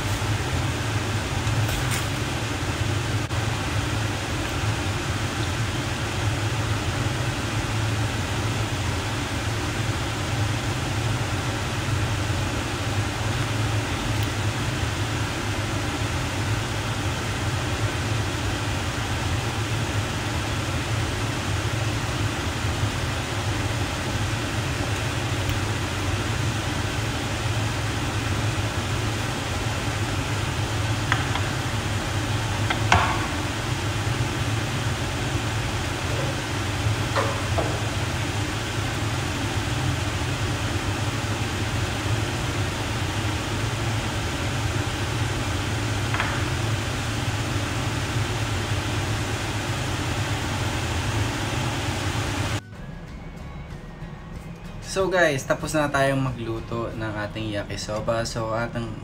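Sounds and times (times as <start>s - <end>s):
kitchen fan whirring: 0.0s - 59.0s.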